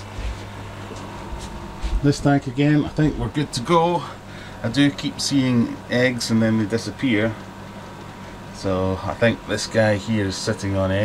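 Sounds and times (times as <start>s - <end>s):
aquarium air pumps humming: 0.0s - 11.0s.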